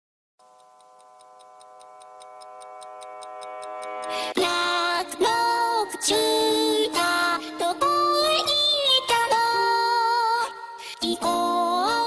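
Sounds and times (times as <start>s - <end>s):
high clock-like ticking: 0.4s - 6.3s.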